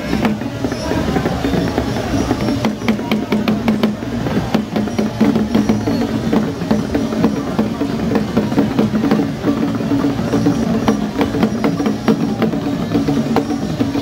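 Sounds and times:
rapid drum beats: 0:00.0 - 0:14.0.

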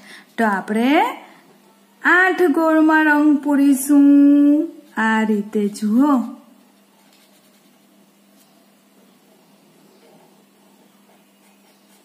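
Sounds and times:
felt-tip pen scribbling on paper: 0:07.0 - 0:07.8.

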